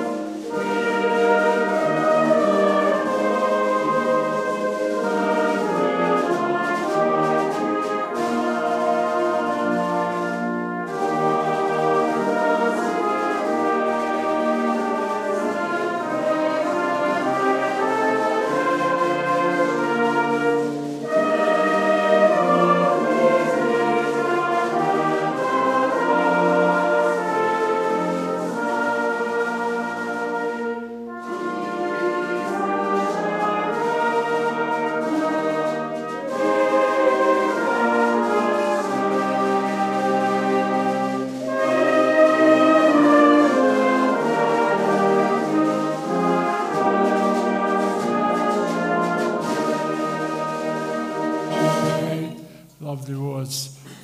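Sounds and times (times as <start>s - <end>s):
brass band playing a hymn: 0.0s - 54.0s.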